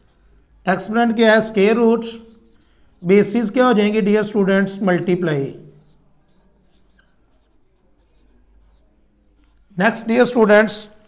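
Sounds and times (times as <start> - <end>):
marker writing on whiteboard: 0.0 - 11.0
man talking: 0.6 - 2.3, 3.0 - 5.7, 9.8 - 11.0.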